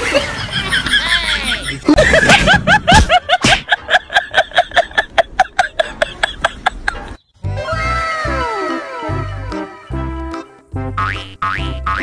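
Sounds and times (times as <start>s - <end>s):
bass line of repeated notes: 9.1s - 12.0s.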